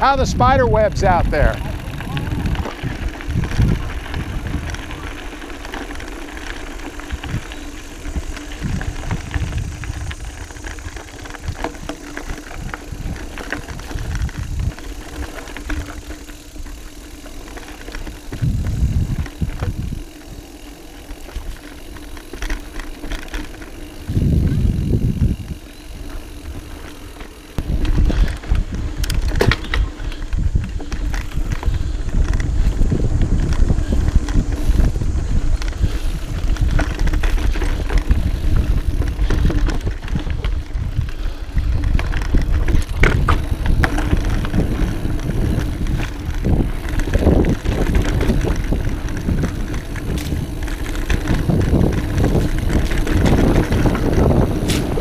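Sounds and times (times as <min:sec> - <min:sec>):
bike rattling over bumps: 0:00.0 - 0:55.0
bike tyres on dirt: 0:00.0 - 0:55.0
wind buffeting microphone: 0:00.0 - 0:55.0.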